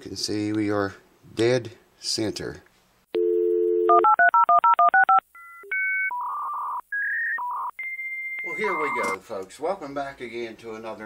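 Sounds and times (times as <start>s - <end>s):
electronic phone tones: 3.2s - 9.2s
telephone dial tone: 3.2s - 9.2s
touch-tone dialing: 3.2s - 9.2s.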